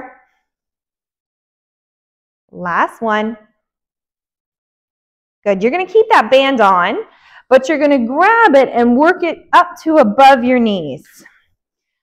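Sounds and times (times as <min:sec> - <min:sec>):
woman speaking: 0:02.6 - 0:03.5, 0:05.5 - 0:11.3.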